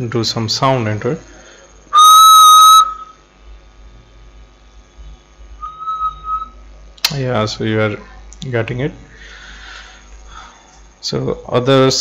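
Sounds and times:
distorted whistled note: 1.9s - 3.2s, 5.6s - 6.6s
whistle played through speaker: 1.9s - 3.2s, 5.6s - 6.6s.

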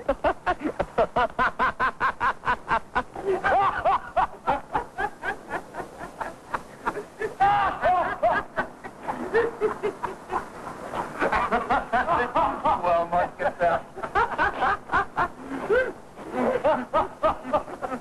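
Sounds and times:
men laughing hard: 0.0s - 18.0s.

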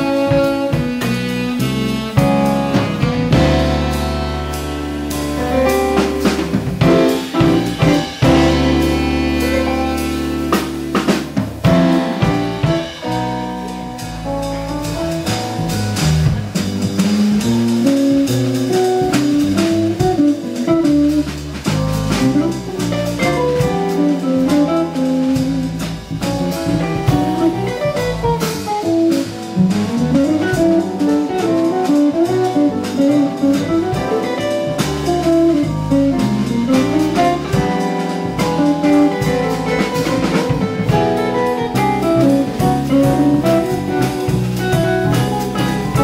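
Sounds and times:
drum kit with cymbals: 0.0s - 46.0s
electric bass guitar: 0.0s - 46.0s
electric guitar melody: 0.0s - 46.0s.

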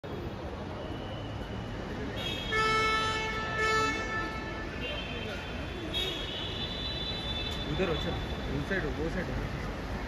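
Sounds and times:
traffic hum: 0.0s - 10.0s
car horn honking: 2.2s - 8.4s.

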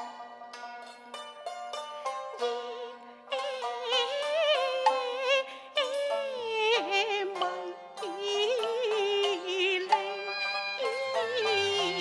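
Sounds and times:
instrumental accompaniment: 0.0s - 12.0s
woman singing opera: 2.5s - 12.0s.

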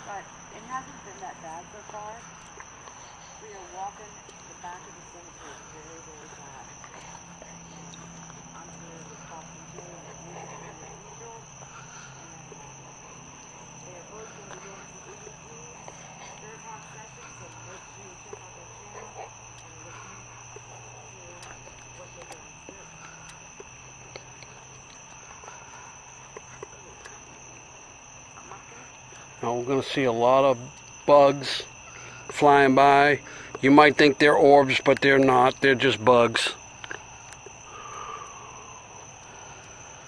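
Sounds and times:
faint voices murmuring: 0.0s - 36.8s
night insects high-pitched calling: 0.0s - 40.0s.

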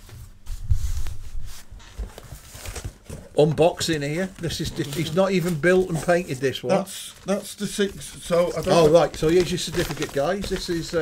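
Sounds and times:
cardboard rustling and scraping: 0.0s - 6.6s, 7.2s - 11.0s.

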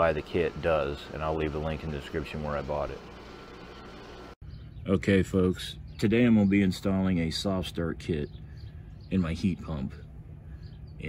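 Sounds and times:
man speaking: 0.0s - 3.0s, 4.9s - 8.3s, 9.1s - 10.0s.

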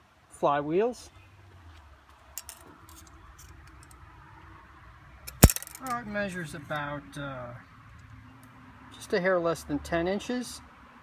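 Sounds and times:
sharp metallic click: 5.3s - 6.0s.

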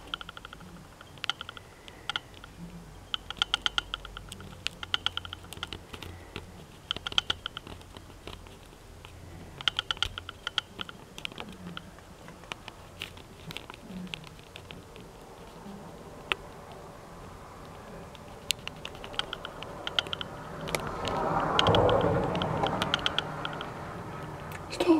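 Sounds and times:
insect tapping on window glass: 0.0s - 24.7s.

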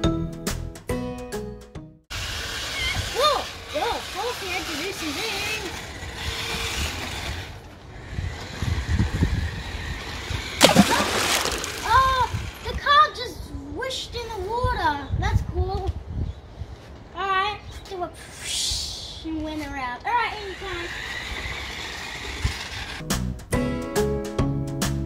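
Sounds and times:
wind on microphone: 8.0s - 10.6s, 14.5s - 16.9s.

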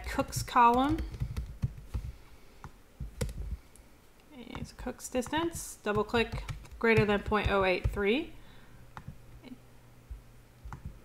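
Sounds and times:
keyboard and mouse clicks: 0.7s - 3.4s.

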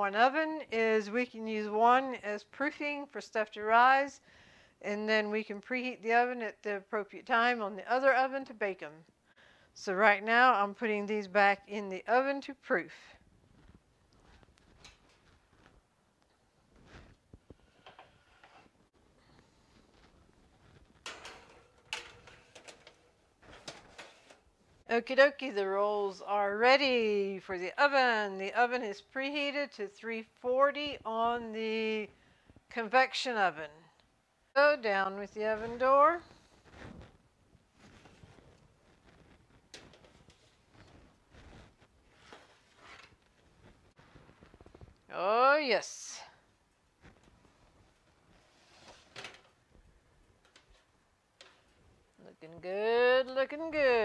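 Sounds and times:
baking sheets sliding onto oven racks: 21.1s - 24.5s.

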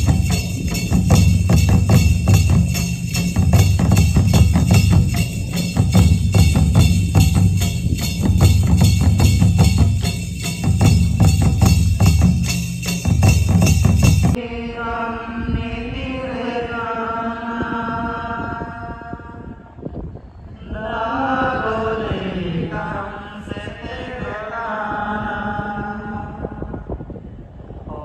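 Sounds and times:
loud fast drumming: 0.0s - 14.4s
voices chanting a prayer: 14.2s - 27.0s.

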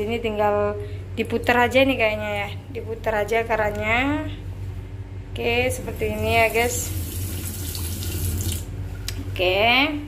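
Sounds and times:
tap water running into basin: 6.2s - 8.7s.

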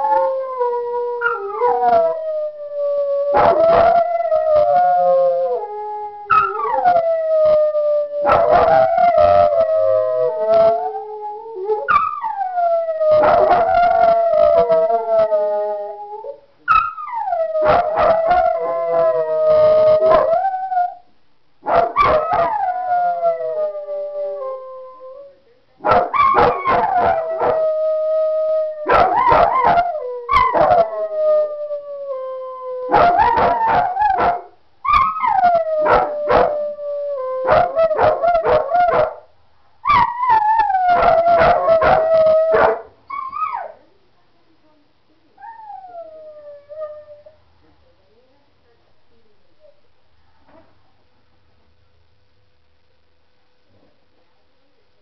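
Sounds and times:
dog howling: 0.0s - 21.0s, 21.7s - 25.2s, 25.9s - 39.2s, 39.9s - 43.8s.

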